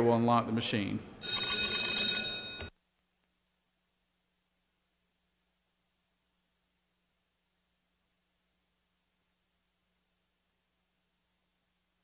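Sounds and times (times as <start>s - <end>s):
electric bell ringing: 1.2s - 2.7s.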